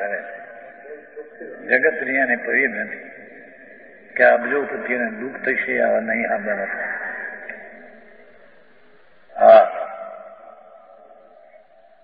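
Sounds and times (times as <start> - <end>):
man lecturing: 0.0 - 3.0, 4.2 - 7.3, 9.3 - 9.9.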